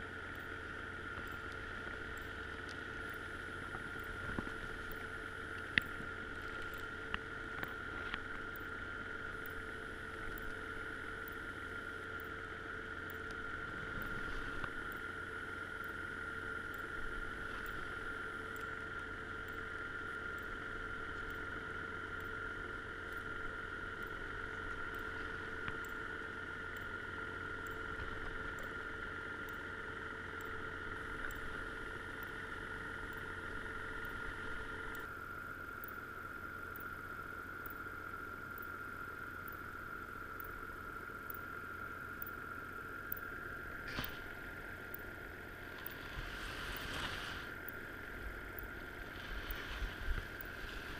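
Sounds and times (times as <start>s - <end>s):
boat engine hum underwater: 0.0s - 50.9s
constant high tone: 0.0s - 50.9s.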